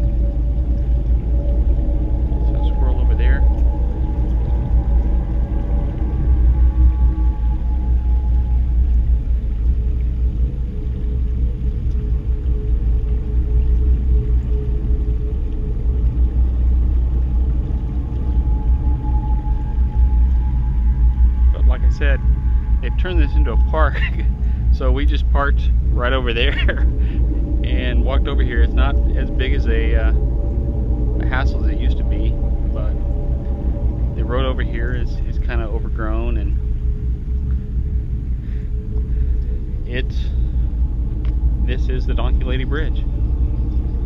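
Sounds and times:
faint held tones: 0.0s - 44.0s
wind buffeting microphone: 0.0s - 44.0s.

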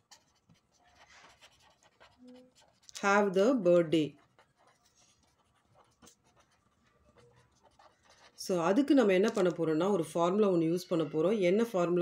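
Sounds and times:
pen scratching on paper: 0.0s - 9.4s.

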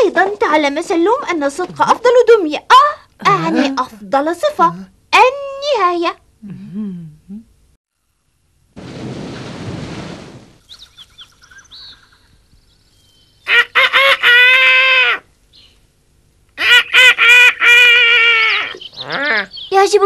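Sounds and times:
short rushing noise: 8.8s - 10.6s
cartoon rooster crowing: 13.5s - 15.3s, 16.6s - 19.5s.

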